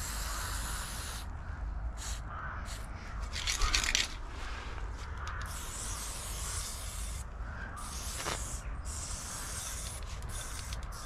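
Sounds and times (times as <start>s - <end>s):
spray paint can spraying: 0.0s - 1.3s, 2.0s - 4.2s, 5.1s - 11.0s.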